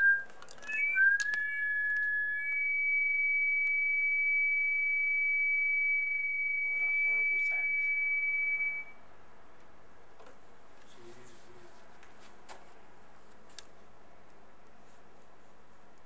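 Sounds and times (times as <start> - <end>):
high-pitched whistle-like tone: 0.0 - 9.0.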